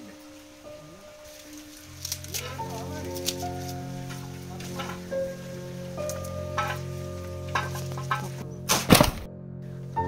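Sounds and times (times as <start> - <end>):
garlic skins crackling: 0.0 - 9.3
background music: 0.0 - 10.0.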